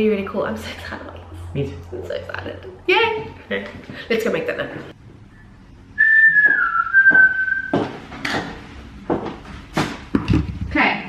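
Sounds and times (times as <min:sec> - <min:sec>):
person whistling: 0:06.0 - 0:07.9.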